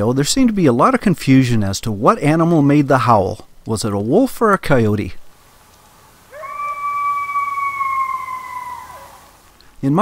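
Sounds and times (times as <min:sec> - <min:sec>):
coyote howling: 0:06.2 - 0:09.5.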